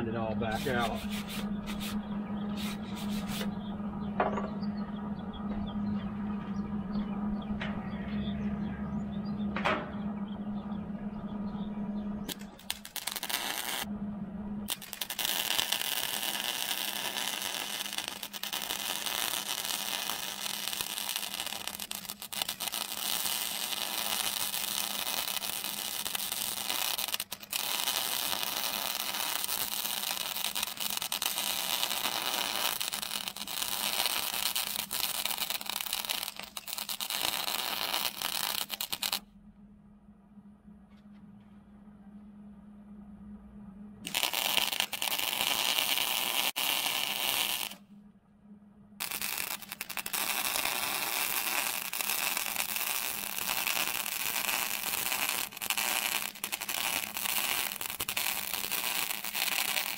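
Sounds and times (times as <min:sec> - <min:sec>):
welder hum: 0:00.0 - 0:39.2, 0:43.9 - 0:47.9, 0:49.0 - 0:59.9
welding arc crackling: 0:00.4 - 0:03.5, 0:12.3 - 0:13.9, 0:14.6 - 0:39.2, 0:44.0 - 0:47.8, 0:49.0 - 0:59.9.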